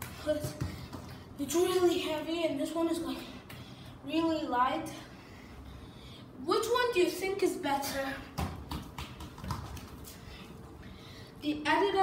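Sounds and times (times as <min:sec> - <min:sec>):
football bumping on tiled floor: 0:00.0 - 0:01.2, 0:08.3 - 0:10.2.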